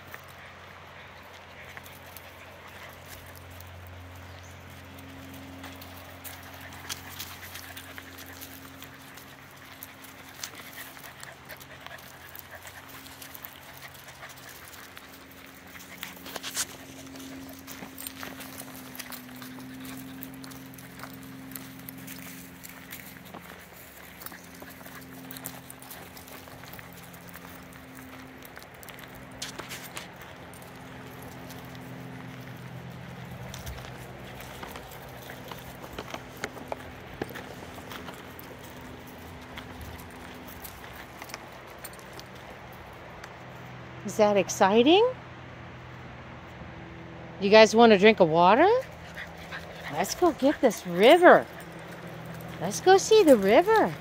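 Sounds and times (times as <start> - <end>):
footsteps crunching on gravel: 1.2 - 43.4, 48.9 - 54.0.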